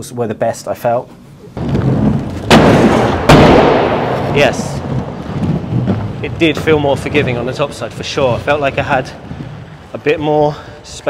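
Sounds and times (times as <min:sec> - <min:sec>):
skater landing impact: 0:01.6 - 0:10.2
inline skates rolling on wooden ramps: 0:01.6 - 0:11.0.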